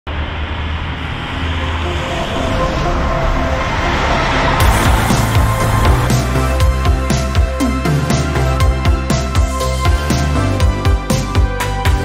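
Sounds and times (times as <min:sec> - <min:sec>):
coach engine and road noise: 0:00.1 - 0:12.0
music: 0:01.2 - 0:12.0.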